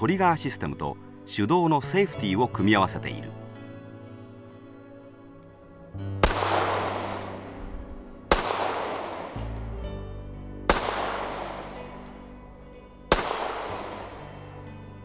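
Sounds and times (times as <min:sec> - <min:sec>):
pistol shots with echo: 0:06.2 - 0:09.7, 0:10.6 - 0:12.3, 0:13.1 - 0:14.6.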